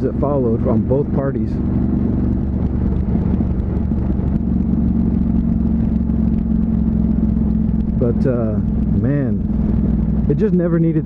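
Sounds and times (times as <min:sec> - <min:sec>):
motorcycle engine cruising: 0:00.0 - 0:11.0
wind noise: 0:01.5 - 0:10.4.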